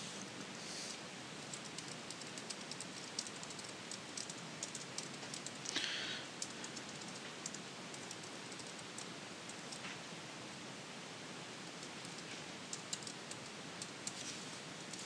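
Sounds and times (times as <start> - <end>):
steady hiss: 0.0 - 15.0
keyboard typing: 1.4 - 5.8, 6.4 - 9.9, 11.7 - 14.2.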